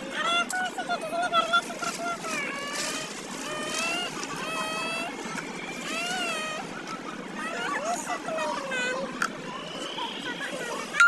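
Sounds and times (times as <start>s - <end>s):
steady background hum: 0.0s - 11.0s
child making sing-song sounds: 0.2s - 5.1s.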